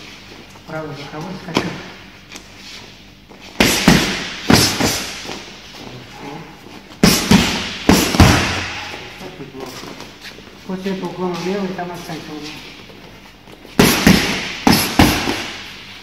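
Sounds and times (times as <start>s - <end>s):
boxing gloves hitting mitts: 3.6s - 5.5s, 6.9s - 9.1s, 13.7s - 15.8s.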